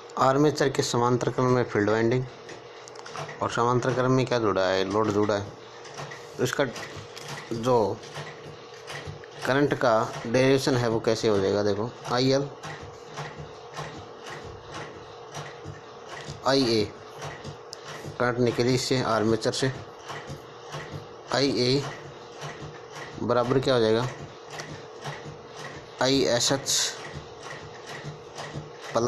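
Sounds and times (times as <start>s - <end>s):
rhythmic mechanical clicking: 0.0s - 29.0s.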